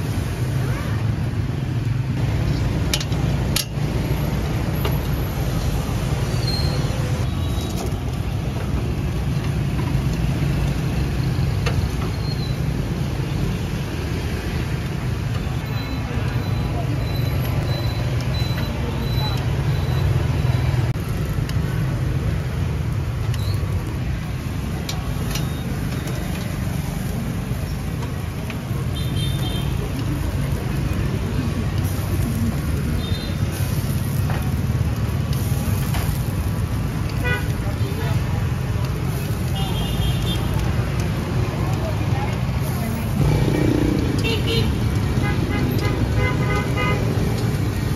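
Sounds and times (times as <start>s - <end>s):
street traffic rumble: 0.0s - 47.9s.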